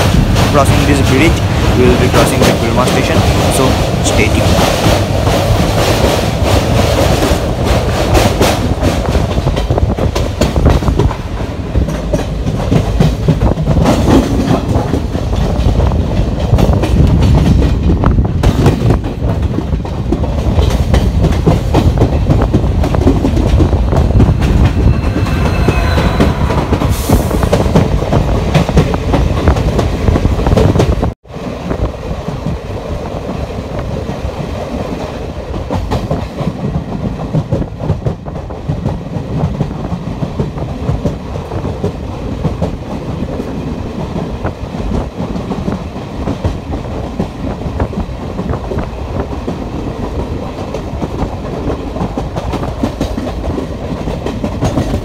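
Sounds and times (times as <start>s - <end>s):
train wheels clattering over rail joints: 0.0s - 24.8s, 33.2s - 55.0s.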